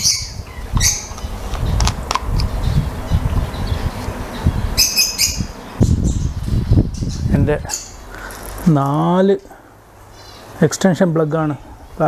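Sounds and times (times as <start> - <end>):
steady low rumble: 0.0 - 8.7
small bird chirping: 0.0 - 8.8.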